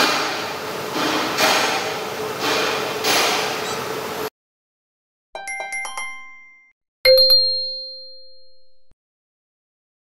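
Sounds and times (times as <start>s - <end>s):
chime notes: 5.4s - 8.9s
bright ding ringing: 6.0s - 8.9s.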